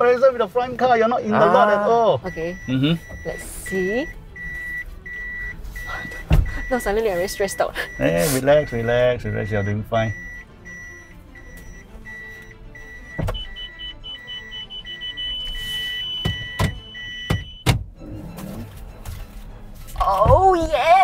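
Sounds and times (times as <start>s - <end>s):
parking sensor beeping: 0.6s - 19.9s
higher faster warning beep: 1.6s - 17.6s.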